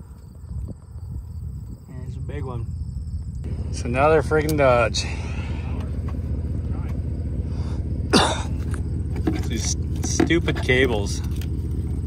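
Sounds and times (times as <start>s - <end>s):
low background rumble: 0.0s - 12.0s
man clearing throat: 8.1s - 8.6s.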